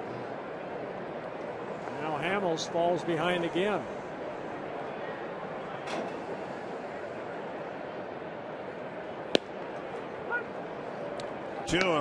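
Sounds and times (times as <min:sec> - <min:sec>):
crowd murmur: 0:00.0 - 0:12.0
ball popping into catcher's mitt: 0:09.3 - 0:09.6.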